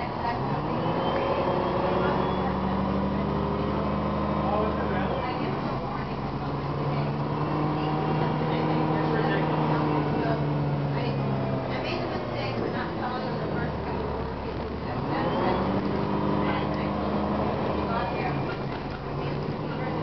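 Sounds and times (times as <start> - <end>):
bus diesel engine accelerating: 0.0 - 20.0.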